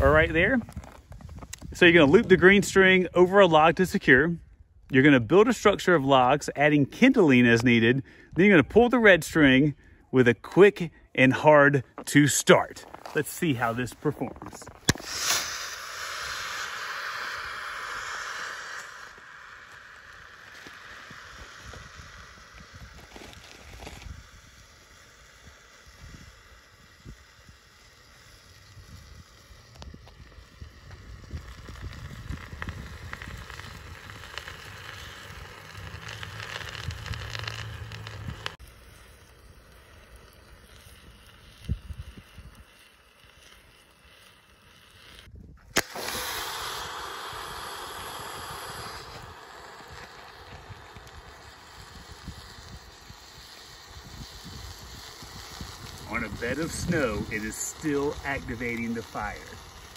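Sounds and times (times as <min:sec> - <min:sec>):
wind rumbling on microphone: 0:00.0 - 0:04.9, 0:15.8 - 0:38.6, 0:39.4 - 0:42.8, 0:45.2 - 0:59.9
wood fire crackling and hissing: 0:00.0 - 0:59.9.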